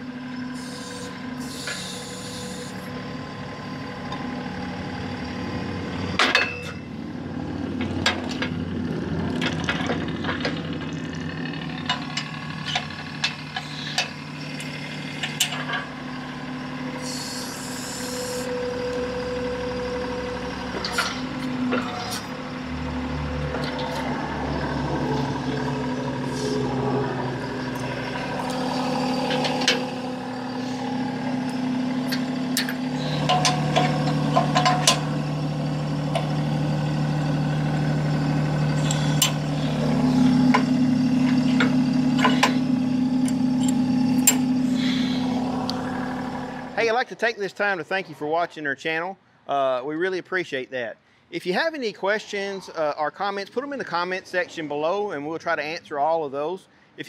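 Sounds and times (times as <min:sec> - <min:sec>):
tractor diesel engine idling: 0:00.0 - 0:47.0
metal clicks and clanks: 0:11.8 - 0:15.9, 0:20.8 - 0:22.3, 0:32.0 - 0:35.1.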